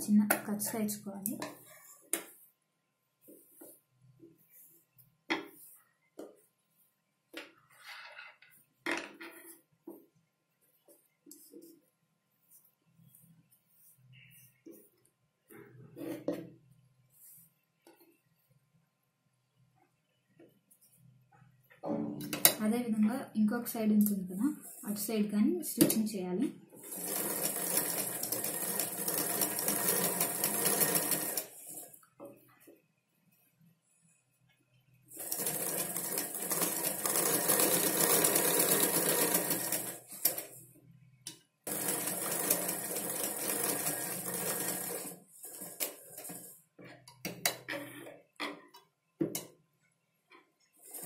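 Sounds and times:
woman speaking: 0.0 - 1.5, 22.6 - 26.6
sewing machine stitching: 26.8 - 31.8, 35.1 - 40.6, 41.7 - 46.6.

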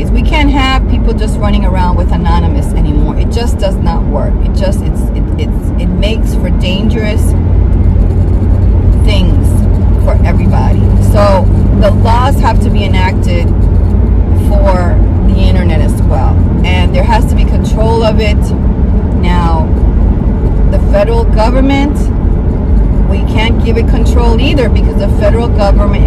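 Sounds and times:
woman talking: 0.0 - 7.3, 9.0 - 13.5, 14.4 - 18.5, 19.2 - 19.7, 20.7 - 22.1, 23.1 - 26.0
vehicle road and engine drone: 0.0 - 26.0.

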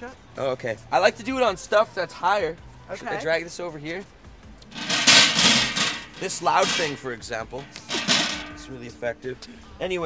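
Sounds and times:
metal table scraping on stone: 4.7 - 7.0, 7.6 - 8.8.

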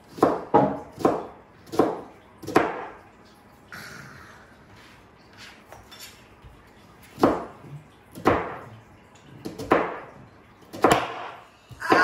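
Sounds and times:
knife chopping onion on board: 0.0 - 2.9, 9.4 - 10.1, 10.7 - 12.0.

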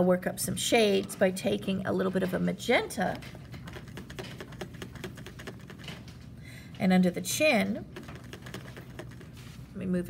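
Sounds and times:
paintbrush scrubbing paint cake: 3.2 - 6.0, 7.8 - 9.8.

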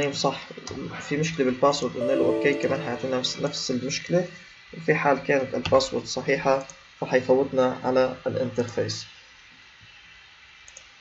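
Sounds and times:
low steady hiss: 1.9 - 9.8
faint computer mouse clicks: 10.7 - 10.9.

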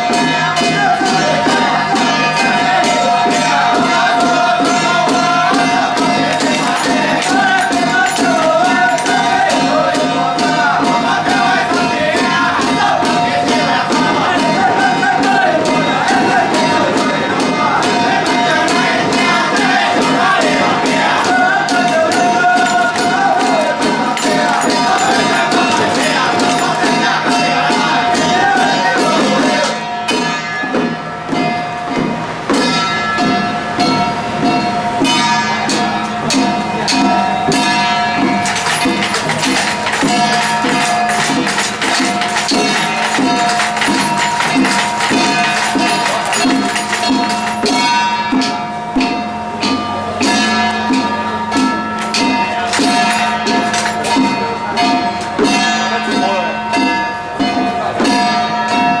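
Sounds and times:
group chanting: 0.0 - 31.0, 31.9 - 49.2, 50.2 - 56.9
hand drums beating: 0.0 - 59.0
ringing metallic tones: 0.0 - 59.0.

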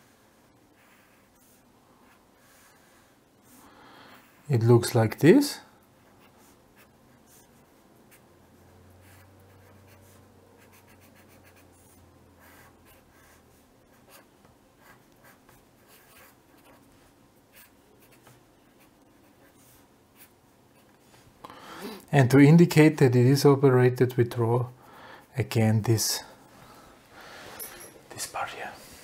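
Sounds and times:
pen scratching on paper: 6.2 - 21.0.

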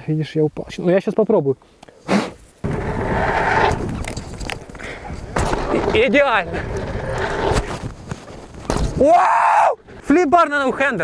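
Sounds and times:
tyre and wind rush: 2.4 - 11.0
low rumble: 2.6 - 7.8.

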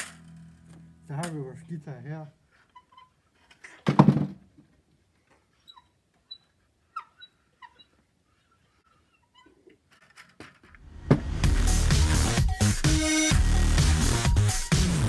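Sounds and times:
distorted electric string instrument: 0.0 - 1.8, 10.9 - 15.0
faint short squeaks: 2.5 - 3.8, 5.4 - 10.6.

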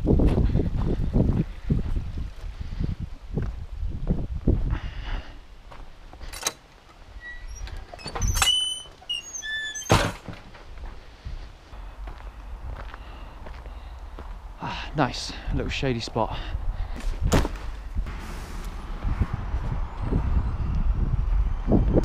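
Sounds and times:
footsteps on stony path: 0.0 - 4.7, 5.6 - 6.3, 10.3 - 14.4, 16.8 - 18.8
gate hinges squealing: 6.3 - 10.2
wooden gate knocking shut: 9.8 - 10.4.

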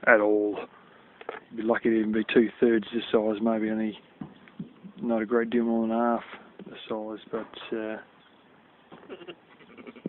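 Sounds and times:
sheep bleating in the distance: 9.0 - 10.0.

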